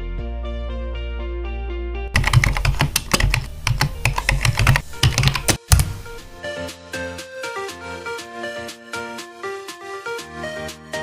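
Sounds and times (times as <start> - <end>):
background music: 0.0 - 11.0
typing on computer keyboard: 2.2 - 6.4.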